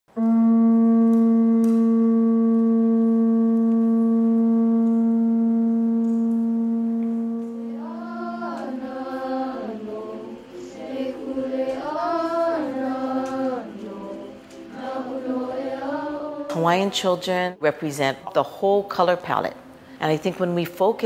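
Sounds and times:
conch shell trumpet note: 0.1s - 8.4s
person chanting: 5.8s - 17.0s.

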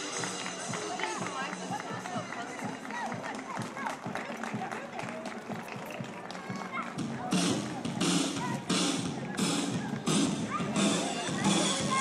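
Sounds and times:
chatter of many voices: 0.0s - 12.0s
music playing outdoors: 0.0s - 12.0s.

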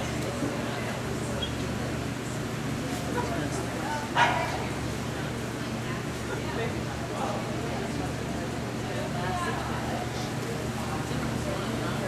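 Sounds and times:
background murmur: 0.0s - 12.0s
dog bark: 4.2s - 4.6s.

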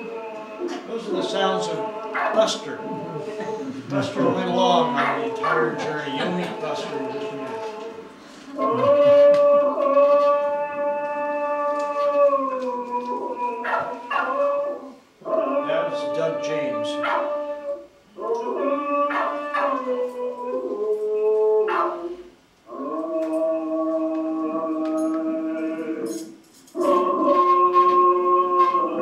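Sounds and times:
dog howling through speakers: 0.0s - 3.2s, 4.2s - 7.6s, 8.6s - 26.2s, 26.8s - 29.0s.

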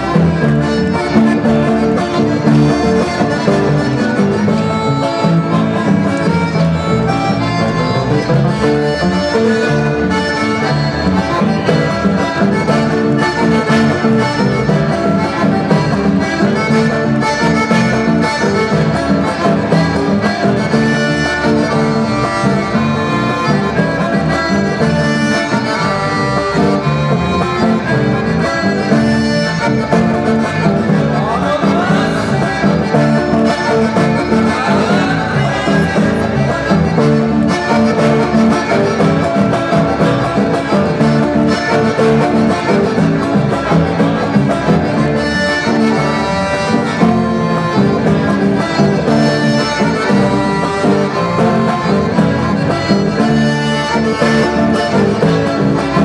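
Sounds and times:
accordion melody: 0.0s - 56.0s
acoustic guitar rhythm: 0.0s - 56.0s.

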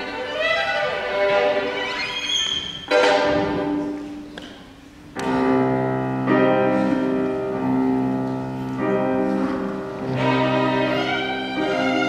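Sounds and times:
grand piano chords: 2.9s - 12.0s.

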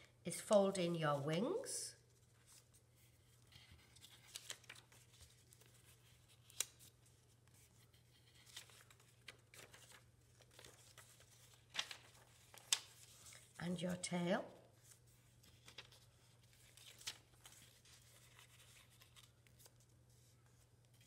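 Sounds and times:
paper rustling and folding: 0.5s - 13.6s, 14.5s - 21.0s.

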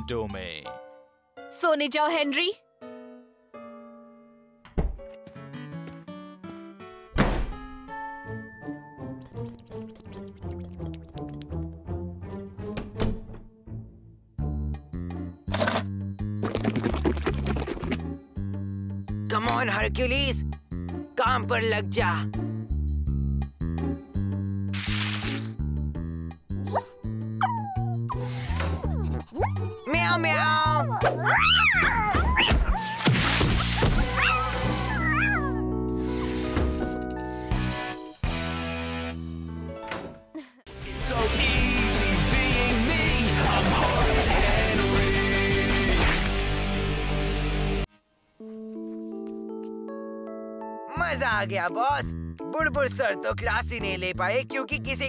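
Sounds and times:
door shutting with a thunk: 4.6s - 5.1s, 7.1s - 7.6s, 12.7s - 13.5s
cartoon cat yowling: 27.4s - 28.1s, 30.6s - 33.1s, 34.0s - 35.7s
soft background music: 47.8s - 55.0s.

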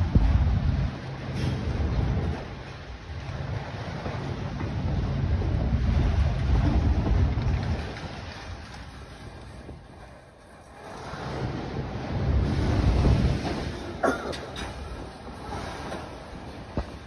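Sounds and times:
freight cars rumbling past: 0.0s - 17.0s
wind buffeting microphone: 0.0s - 17.0s.

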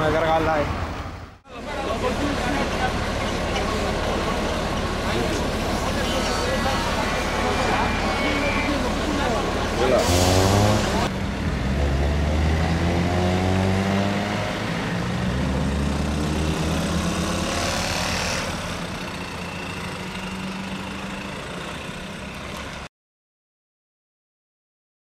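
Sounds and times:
cars accelerating past: 5.0s - 21.4s.

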